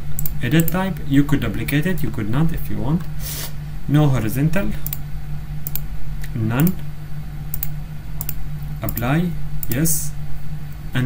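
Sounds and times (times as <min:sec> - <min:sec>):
steady low hum: 0:00.0 - 0:11.0
computer clicks: 0:00.1 - 0:00.8, 0:04.8 - 0:05.0, 0:05.6 - 0:05.9, 0:07.5 - 0:09.9.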